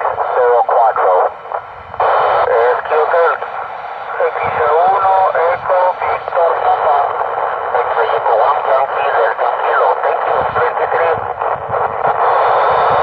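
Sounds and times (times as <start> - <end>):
radio hiss: 0.0 - 13.0
voice over radio speaker: 0.0 - 13.0.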